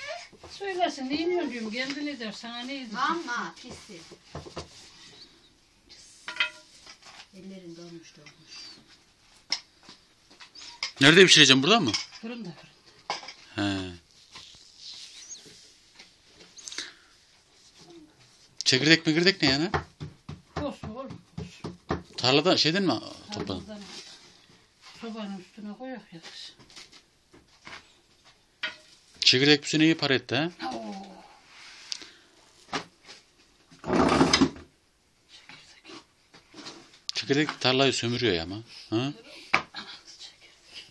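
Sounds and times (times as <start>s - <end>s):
faint high chirp: 14.7s - 15.6s
dough knocking on a board: 19.5s - 22.0s.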